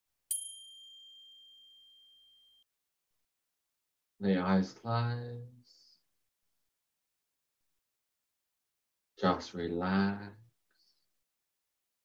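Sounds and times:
high bell-like chime: 0.3 - 2.6.

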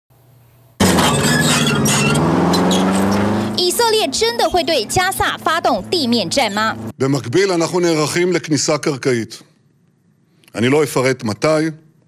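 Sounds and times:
tracked vehicle engine and tracks: 0.8 - 6.9.

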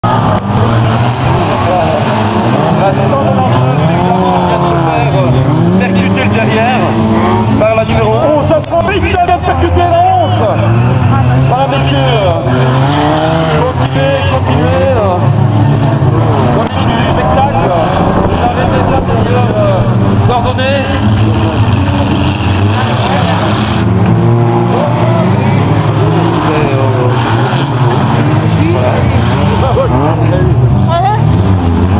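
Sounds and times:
car engines revving: 0.0 - 31.9.

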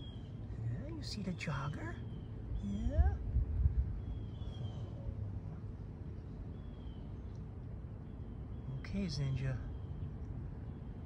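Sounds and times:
faint bird chirps: 0.0 - 3.2, 3.9 - 5.6, 6.2 - 11.0.

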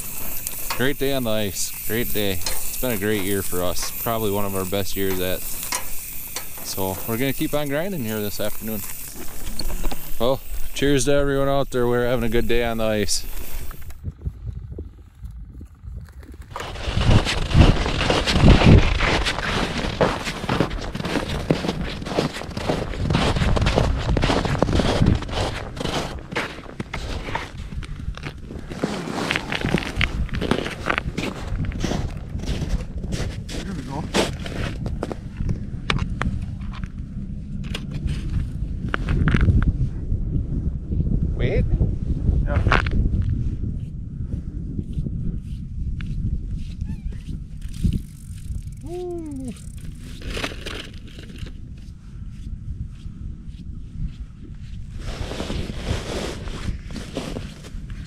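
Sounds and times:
crackling: 0.0 - 14.1
wind buffeting microphone: 0.0 - 58.0.

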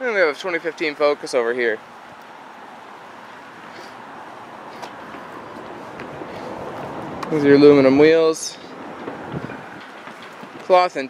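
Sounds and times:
distant road traffic: 0.0 - 11.0.

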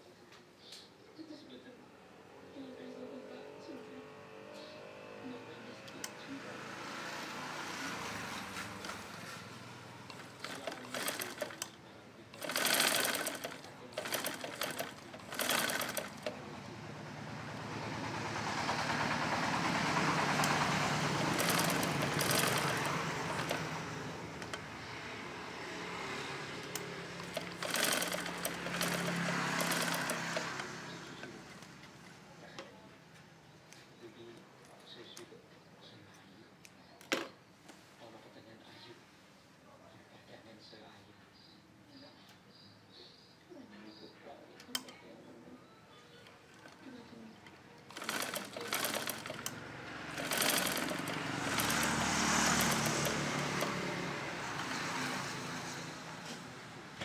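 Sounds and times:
sewing machine stitching: 8.0 - 9.4, 10.1 - 16.5, 18.6 - 24.7, 26.6 - 31.5, 47.9 - 56.4.

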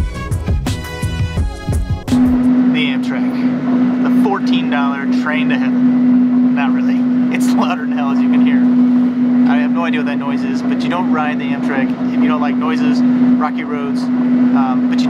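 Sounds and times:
loud steady low hum: 0.0 - 15.0.

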